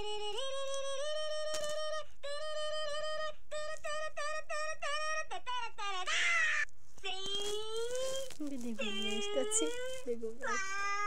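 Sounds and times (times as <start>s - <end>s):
high drawn-out cry: 2.2s - 7.8s, 8.8s - 11.0s.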